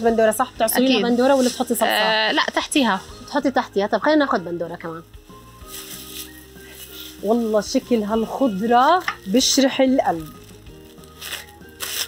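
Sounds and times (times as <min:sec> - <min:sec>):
soft background music: 0:00.0 - 0:12.0
plastic bag crinkling: 0:04.7 - 0:12.0.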